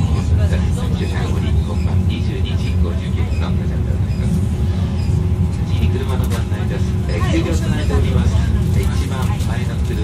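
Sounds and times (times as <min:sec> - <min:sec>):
constant hum: 0:00.0 - 0:10.0.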